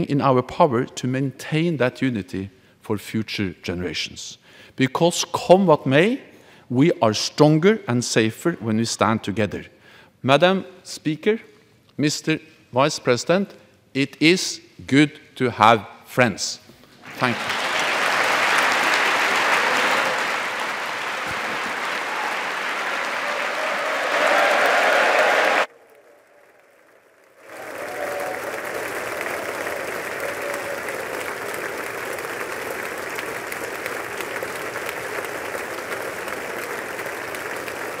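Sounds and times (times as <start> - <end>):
audience applauding: 17.1 - 38.0.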